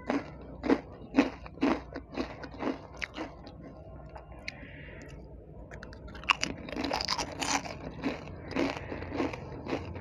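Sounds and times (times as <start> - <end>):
chewing crunchy snack: 0.0 - 4.6, 5.7 - 10.0.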